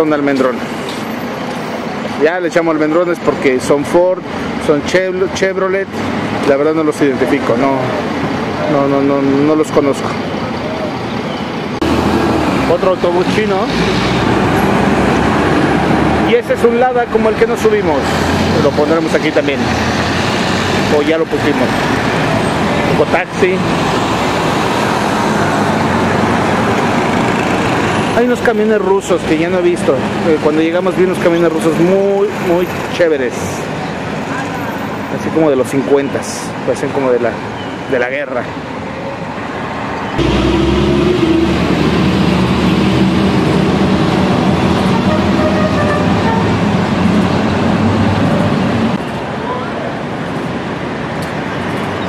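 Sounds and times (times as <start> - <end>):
road noise: 0.0 - 52.0
street traffic engines: 0.0 - 52.0
bus engine hum: 10.0 - 16.3, 39.2 - 52.0.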